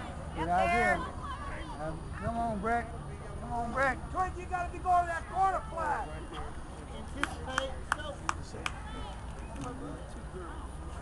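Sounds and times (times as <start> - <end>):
faint distant voices: 0.0 - 11.0
hands clapping: 7.2 - 8.8.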